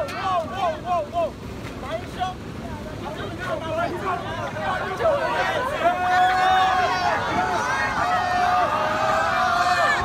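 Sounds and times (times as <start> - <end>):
mixed crowd voices: 0.0 - 10.0
teenagers laughing or shouting: 3.5 - 10.0.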